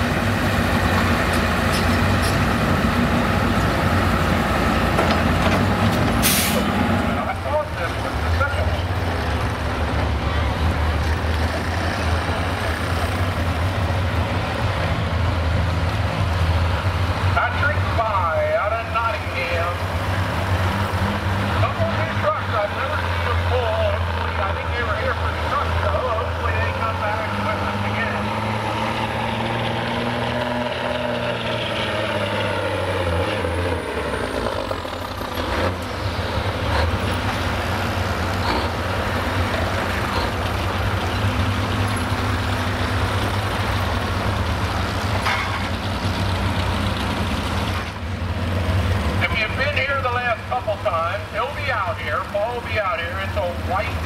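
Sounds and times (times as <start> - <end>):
truck engine working under load: 0.0 - 54.0.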